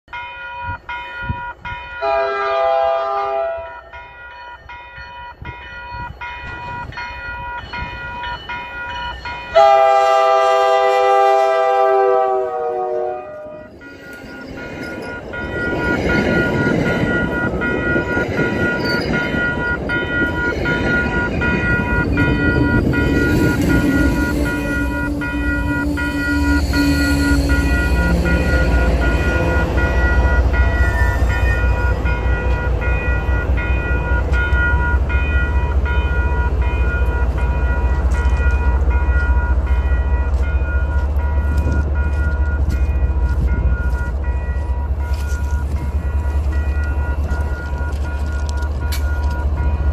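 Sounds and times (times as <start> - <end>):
crossing bell ringing: 0.0 - 49.9
train wheels rumbling on rails: 0.1 - 49.9
train horn: 2.0 - 3.9, 9.5 - 13.7, 23.4 - 31.2
locomotive engine throb: 6.1 - 49.9.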